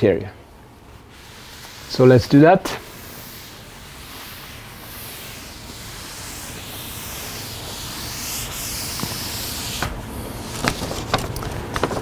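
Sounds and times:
cloth wiping a chalkboard: 0:00.9 - 0:10.8.

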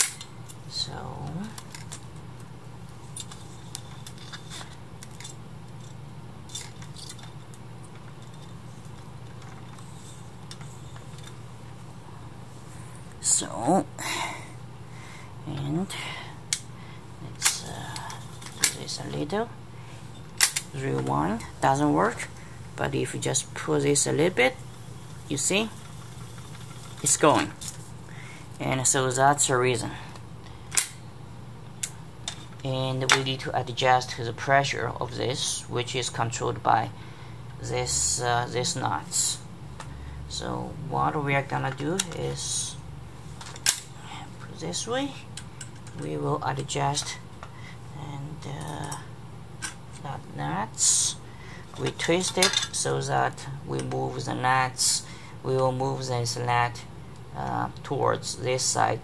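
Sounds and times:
tape recorder humming: 0:00.0 - 0:59.0.

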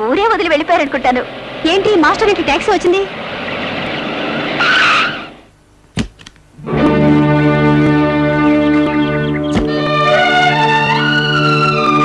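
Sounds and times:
car driving and braking: 0:00.0 - 0:05.5
tyre squeal: 0:04.6 - 0:05.4.

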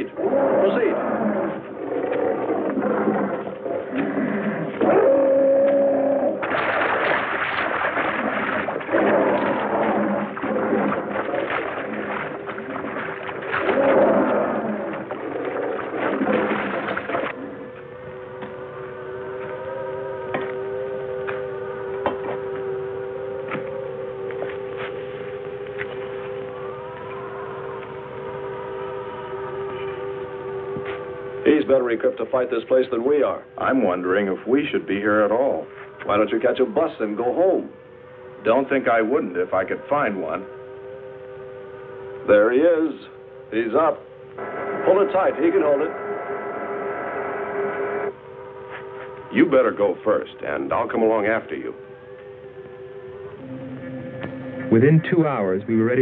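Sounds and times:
scattered cries: 0:00.0 - 0:06.8
electronic drone with gliding notes: 0:00.0 - 0:56.0
churning rushing noise: 0:06.4 - 0:17.4.

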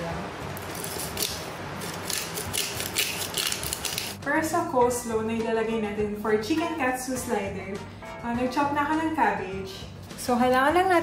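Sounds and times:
pepper mill grinding: 0:00.6 - 0:04.2.

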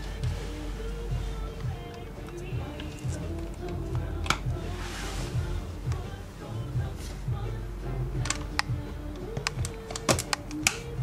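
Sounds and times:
plastic casing clicks: 0:08.2 - 0:08.7, 0:09.3 - 0:10.9.

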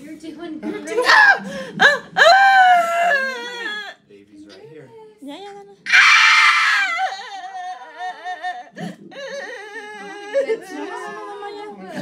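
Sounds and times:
woman wailing and moaning: 0:06.0 - 0:11.1.

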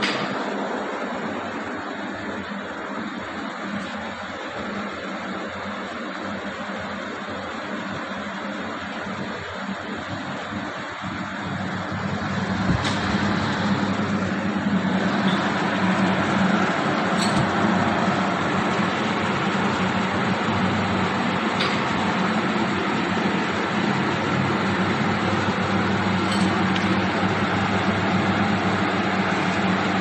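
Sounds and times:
packaging machine running: 0:09.1 - 0:30.0.

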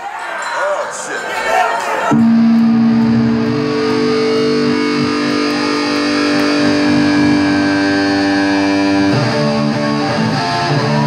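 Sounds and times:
distorted electric guitar chord: 0:02.1 - 0:11.0.

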